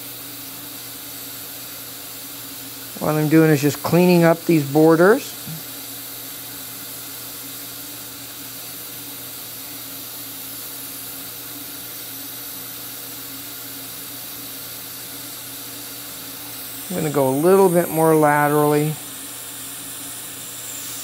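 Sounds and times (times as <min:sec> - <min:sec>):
dental suction hissing: 0:01.0 - 0:07.0, 0:11.9 - 0:21.0.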